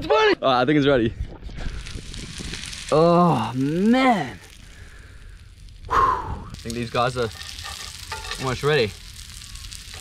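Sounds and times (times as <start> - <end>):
fish fillets sizzling in a pan: 1.7 - 5.7, 6.6 - 10.0.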